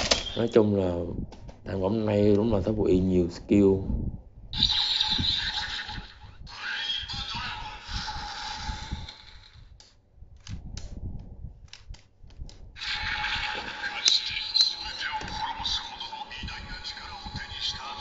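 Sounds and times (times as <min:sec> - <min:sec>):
toy electronic sound effects: 0:04.6 - 0:09.5.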